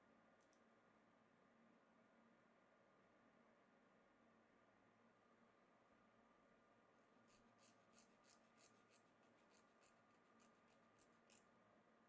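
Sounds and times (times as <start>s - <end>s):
metal file rasping on needle: 7.2s - 11.4s.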